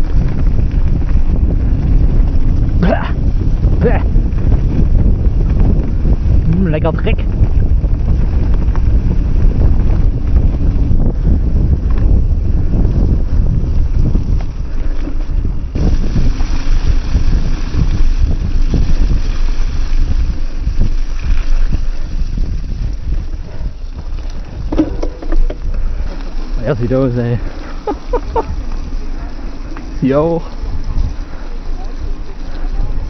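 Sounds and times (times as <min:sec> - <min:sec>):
bike tyres rattling over ground: 0:00.0 - 0:33.0
wind rushing over microphone: 0:00.0 - 0:33.0.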